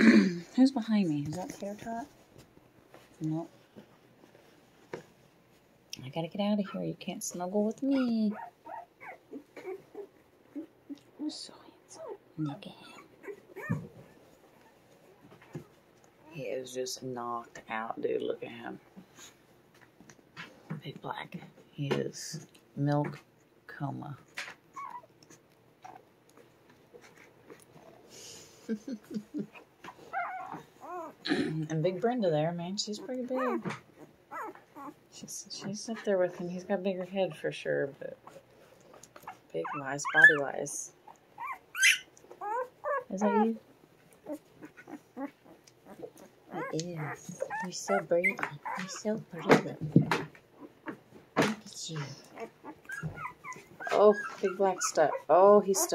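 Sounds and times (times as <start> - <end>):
puppy whimpering: 7.8 - 11.1, 12.0 - 12.2, 12.9 - 14.8, 24.7 - 26.0, 29.1 - 31.2, 33.2 - 35.0, 39.2 - 40.5, 41.1 - 43.6, 44.2 - 49.5, 52.0 - 55.9.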